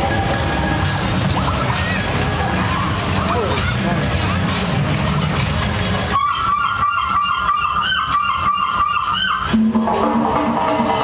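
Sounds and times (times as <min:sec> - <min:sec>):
street parade music: 0:00.0 - 0:11.0.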